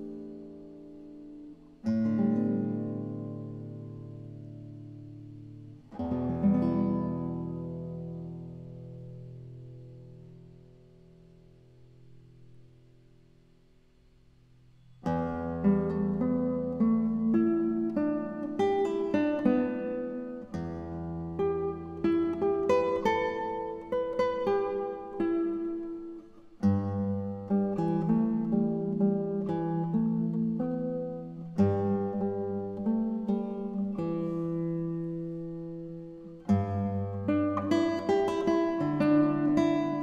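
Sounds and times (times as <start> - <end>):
acoustic guitar piece: 0.0 - 40.0.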